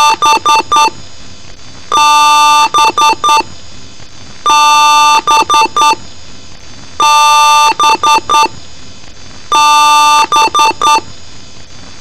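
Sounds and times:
computer beep code: 0:00.0 - 0:00.9, 0:01.9 - 0:03.4, 0:04.5 - 0:06.0, 0:07.0 - 0:08.5, 0:09.5 - 0:11.0.

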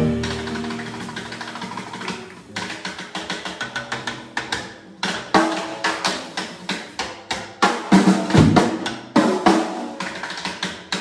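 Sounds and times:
jazz combo playing: 0:00.0 - 0:02.5
drum stick strokes: 0:00.0 - 0:07.9.

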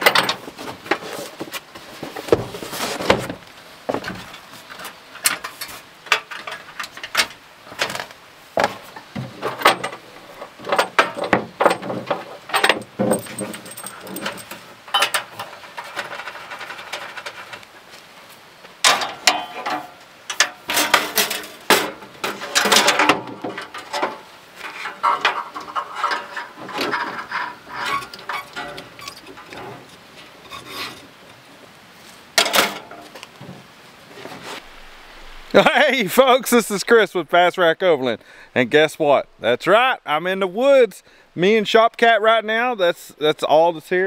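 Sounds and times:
metal camp stove clanking: 0:00.0 - 0:01.2, 0:02.2 - 0:17.7, 0:18.8 - 0:31.2, 0:32.4 - 0:33.2.

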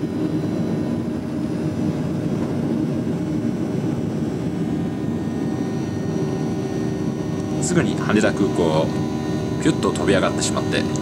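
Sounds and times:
jet engines at takeoff: 0:00.0 - 0:11.0.

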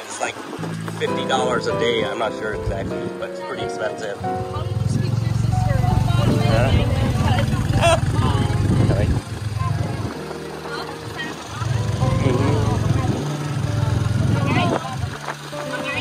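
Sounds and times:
motorcycle engine running: 0:00.6 - 0:03.3, 0:04.0 - 0:16.0.

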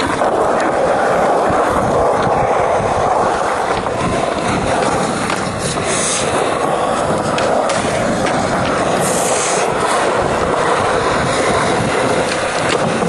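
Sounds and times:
skateboard wheels rolling on concrete: 0:00.0 - 0:13.0.

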